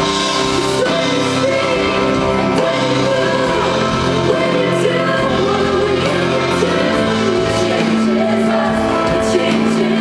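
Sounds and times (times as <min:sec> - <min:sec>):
worship band playing: 0:00.0 - 0:10.0
man and woman singing: 0:00.3 - 0:10.0.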